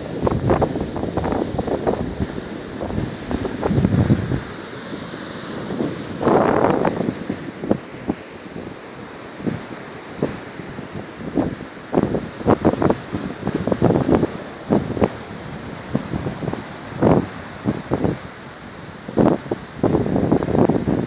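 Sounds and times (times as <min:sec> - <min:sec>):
surf washing: 0:00.0 - 0:21.0
wind buffeting microphone: 0:00.0 - 0:21.0.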